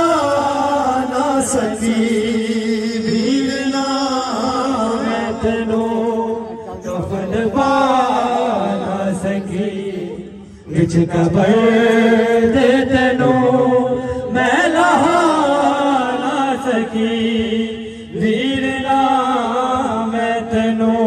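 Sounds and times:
person chanting a lament: 0:00.0 - 0:21.0.

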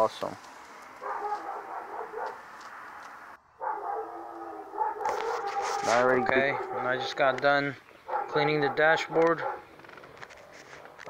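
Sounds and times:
dog whining: 0:03.6 - 0:06.9.

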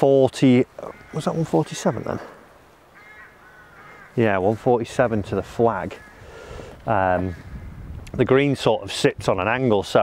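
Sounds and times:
faint distant bird calls: 0:00.0 - 0:08.6.

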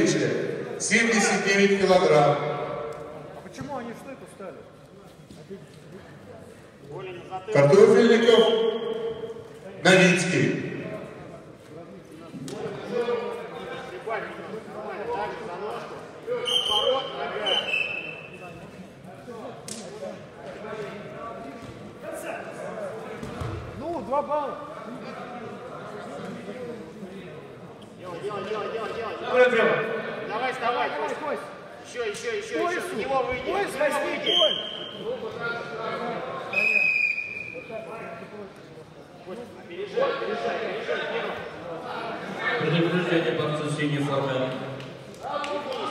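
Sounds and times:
men's voices: 0:00.0 - 0:17.8
referee's whistle: 0:08.2 - 0:09.3, 0:16.4 - 0:18.4, 0:34.2 - 0:35.1, 0:36.5 - 0:37.7.

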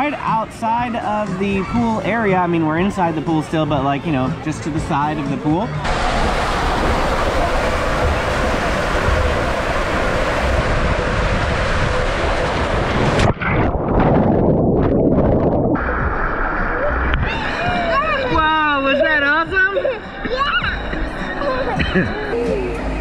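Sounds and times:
rushing water and air on slide: 0:04.5 - 0:19.0.

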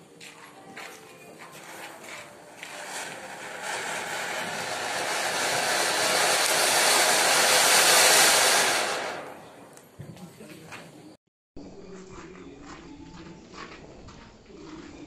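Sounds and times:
firework fountain hissing: 0:01.6 - 0:09.7.

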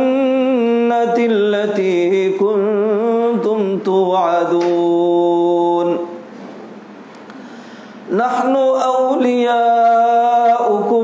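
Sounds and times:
man chanting melodically: 0:00.0 - 0:06.2, 0:08.1 - 0:11.0.

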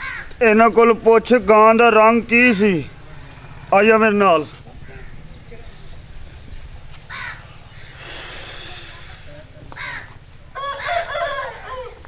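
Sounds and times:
birds calling: 0:00.0 - 0:12.0
low rumble: 0:02.9 - 0:08.0.

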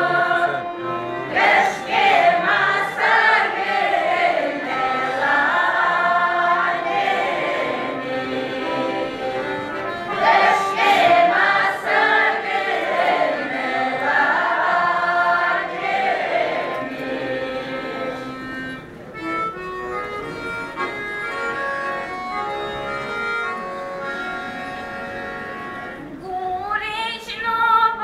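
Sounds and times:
women singing folk song: 0:00.0 - 0:00.6, 0:01.3 - 0:09.4, 0:10.1 - 0:18.0, 0:26.2 - 0:28.0
accordion: 0:00.0 - 0:26.9.

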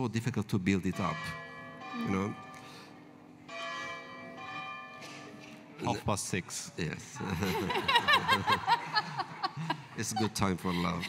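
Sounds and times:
church bell striking: 0:00.9 - 0:05.8.

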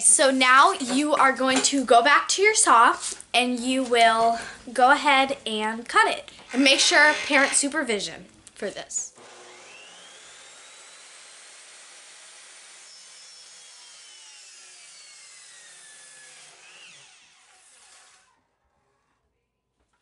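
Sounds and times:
miter saw cutting wood: 0:06.5 - 0:07.8, 0:09.2 - 0:18.4.

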